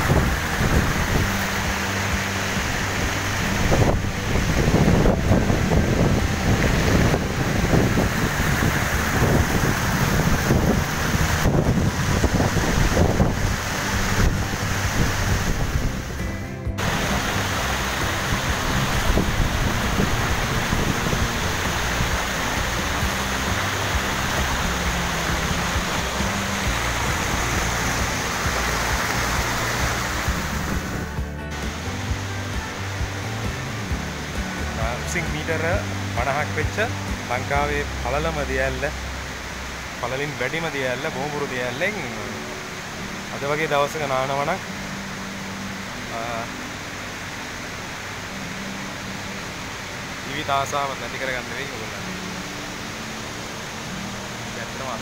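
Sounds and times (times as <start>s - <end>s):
background music with bass: 0.0s - 55.0s
waterfall rushing water: 0.0s - 55.0s.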